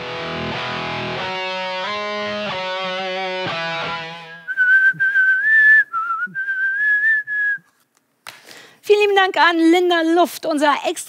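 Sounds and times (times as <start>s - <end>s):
guitar background music: 0.0s - 4.6s
whistled tune: 4.2s - 7.8s.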